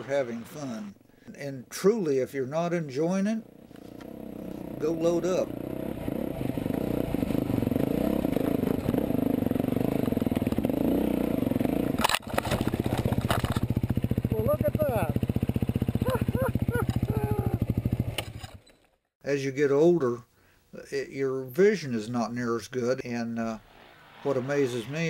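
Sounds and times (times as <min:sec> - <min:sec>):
dirt bike engine idling: 0:03.4 - 0:12.0, 0:12.6 - 0:18.7
dirt bike engine running: 0:03.4 - 0:18.8
person's voice: 0:14.3 - 0:15.2, 0:17.1 - 0:17.6, 0:24.2 - 0:25.0.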